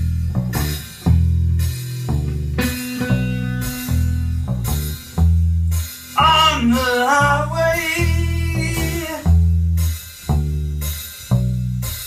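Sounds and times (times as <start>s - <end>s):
blues band playing: 0.0s - 12.0s
heavy bass notes: 0.0s - 12.0s.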